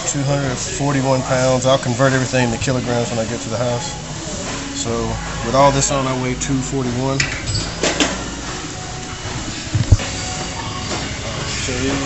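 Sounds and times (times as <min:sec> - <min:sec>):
gym room noise: 0:00.0 - 0:12.0.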